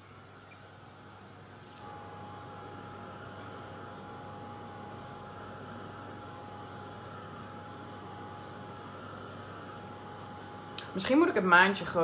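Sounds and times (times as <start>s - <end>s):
hair dryer blowing: 1.7s - 12.0s.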